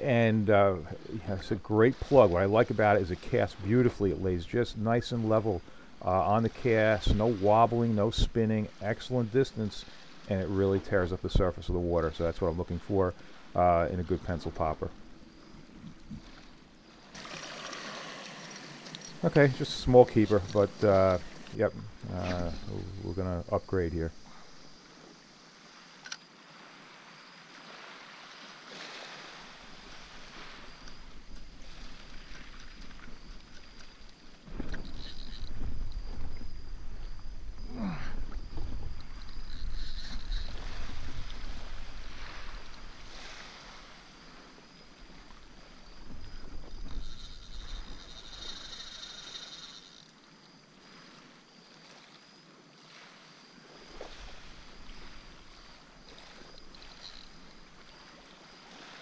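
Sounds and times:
water noise: 0:00.0 - 0:59.0.

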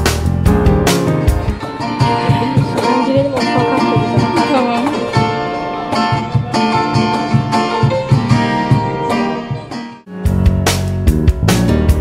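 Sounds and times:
acoustic guitar: 0:00.0 - 0:12.0
cajon beat: 0:00.0 - 0:12.0
plucked string instrument: 0:00.0 - 0:12.0.

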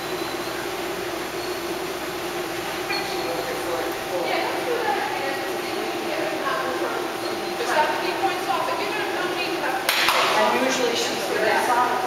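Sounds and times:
indistinct voices in a hall: 0:02.8 - 0:12.0.

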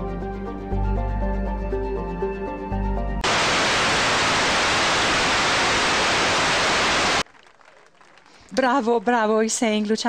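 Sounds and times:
television static hiss: 0:03.2 - 0:07.2.

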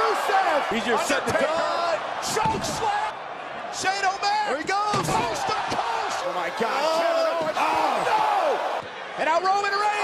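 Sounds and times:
crowd noise: 0:00.0 - 0:10.0
excited shouting commentary: 0:00.0 - 0:10.0.

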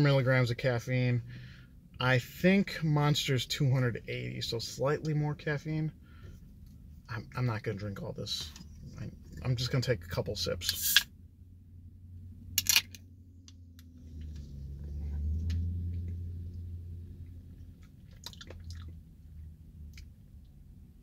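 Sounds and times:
low rumble: 0:05.9 - 0:21.0.

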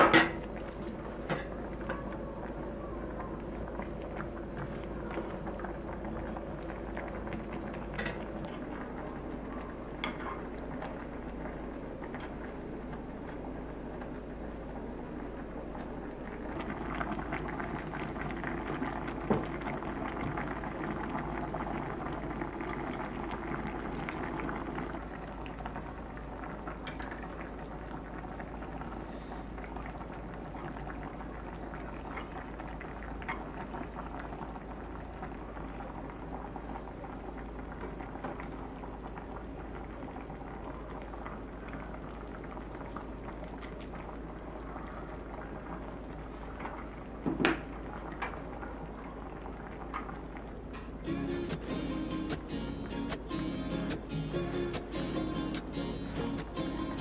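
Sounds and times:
stew bubbling in a pot: 0:00.0 - 0:51.3.

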